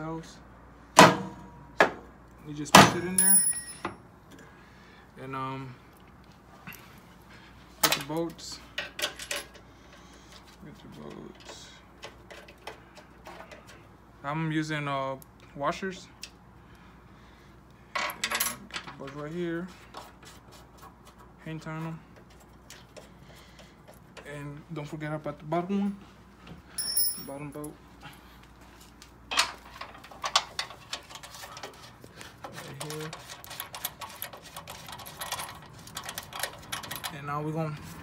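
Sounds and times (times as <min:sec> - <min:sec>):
metal washers clinking: 0:02.9 - 0:04.0, 0:26.8 - 0:27.7.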